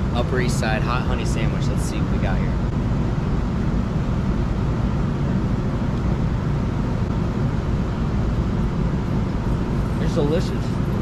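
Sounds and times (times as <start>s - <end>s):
city street traffic rumble: 0.0s - 11.0s.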